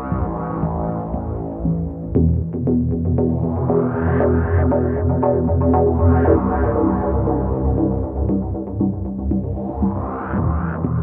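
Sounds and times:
low throbbing bass: 0.0s - 11.0s
synthesizer chords: 0.0s - 11.0s.

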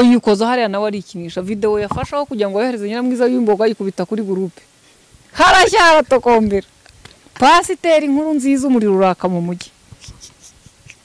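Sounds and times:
person speaking into a microphone: 0.0s - 4.6s, 5.4s - 6.7s
faint small rustles and ticks: 1.3s - 5.4s, 6.0s - 11.0s.

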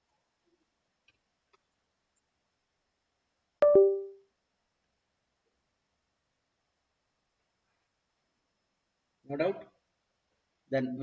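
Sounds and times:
two-note electronic chime: 3.6s - 4.2s.

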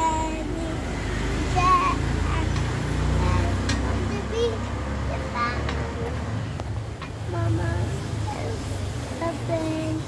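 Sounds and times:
young child's voice: 2.3s - 6.0s.

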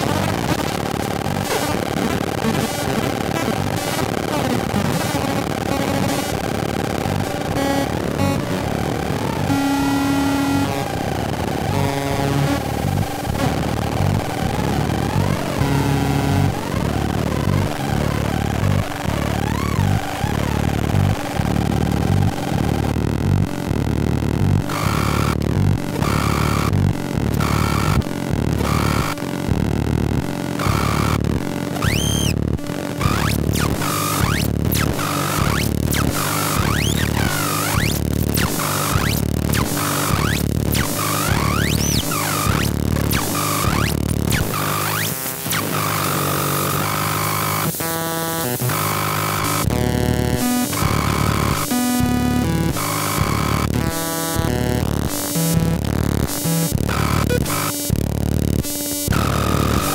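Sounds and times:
buzzy square-wave synth tones: 0.0s - 59.9s
chopped synth pulse: 4.3s - 59.9s.

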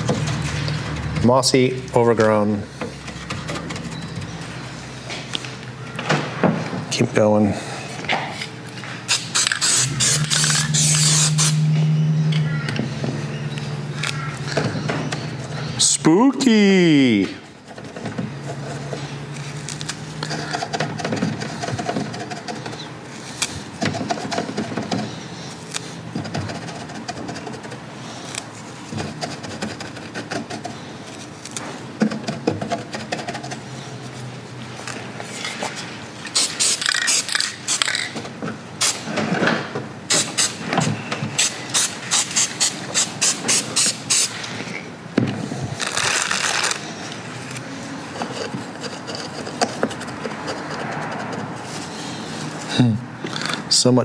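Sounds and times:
short crisp hissing bursts: 9.1s - 11.6s, 36.3s - 37.8s, 41.4s - 44.4s.

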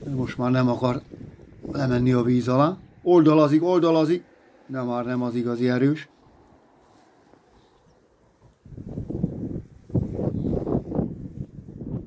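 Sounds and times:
wind buffeting microphone: 0.0s - 3.3s, 8.3s - 12.0s.

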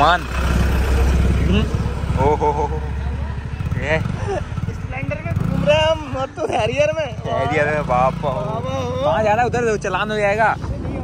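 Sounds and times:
bus passing close: 0.0s - 4.7s
traffic engine rumble: 0.0s - 11.0s.

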